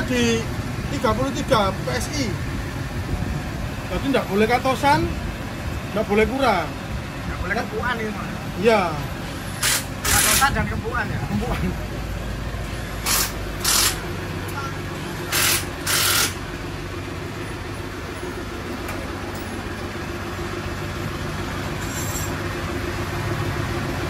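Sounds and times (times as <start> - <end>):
hissing spray bursts: 9.6 - 10.5, 13.0 - 14.0, 15.3 - 16.4.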